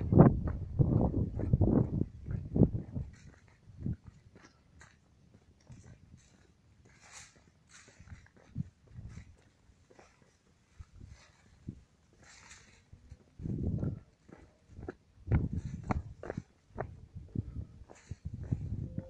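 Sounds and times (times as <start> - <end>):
low rumbling wind buffets: 0.0 - 4.3, 8.0 - 9.4, 12.7 - 19.0
footsteps on dirt trail: 0.0 - 19.0.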